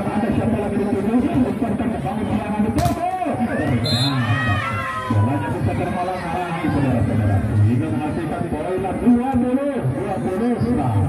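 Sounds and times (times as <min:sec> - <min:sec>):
spectators chattering and shouting: 0:00.0 - 0:11.0
ball smack: 0:02.8 - 0:03.0
crowd high-pitched cries: 0:03.4 - 0:06.6.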